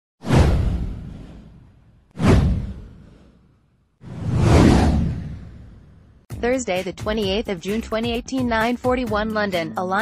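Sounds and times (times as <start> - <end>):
whoosh with low boom: 0.2 - 6.3.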